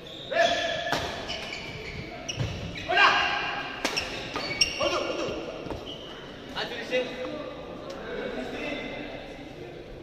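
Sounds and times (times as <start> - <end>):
shoes squeaking on court: 0.0 - 3.0, 3.9 - 6.4
racket hitting shuttlecock: 0.9 - 1.5, 3.7 - 4.6.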